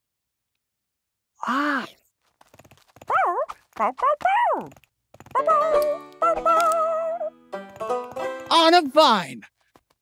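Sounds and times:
wavering cartoon voice calls: 5.4 - 7.3.

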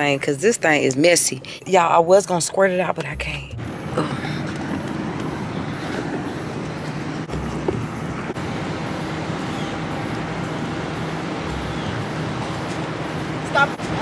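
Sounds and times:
outdoor traffic noise: 0.0 - 14.0
low rumbles: 1.7 - 14.0
vehicle engine idling: 3.0 - 14.0.

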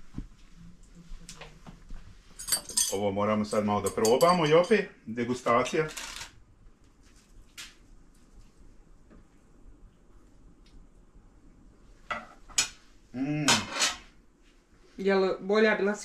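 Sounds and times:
cutlery clinking on a plate: 3.8 - 4.8.

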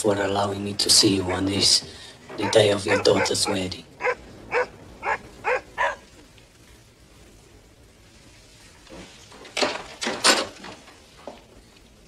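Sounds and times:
dog barking: 1.2 - 1.7, 2.4 - 6.0.

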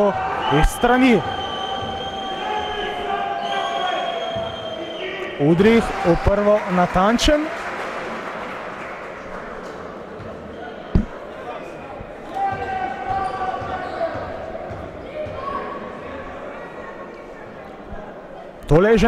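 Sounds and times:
crowd voices echoing in a hall: 0.0 - 19.0.

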